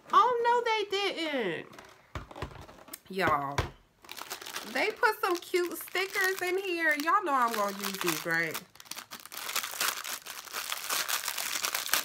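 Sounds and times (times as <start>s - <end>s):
plastic packet crinkling: 4.0s - 12.0s.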